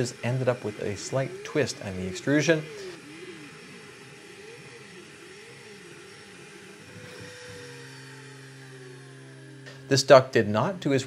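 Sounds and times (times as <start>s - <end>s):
steady machine hum: 0.0s - 11.0s
stepper motors whining: 0.0s - 11.0s.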